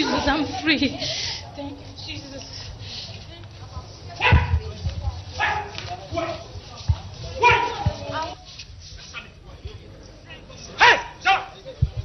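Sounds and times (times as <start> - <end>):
low background murmur: 0.0 - 12.0.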